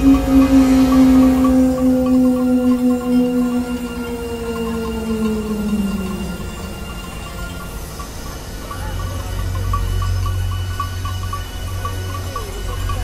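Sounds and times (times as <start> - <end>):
gliding electronic tones: 0.0 - 9.2
electronic low drone: 0.0 - 13.0.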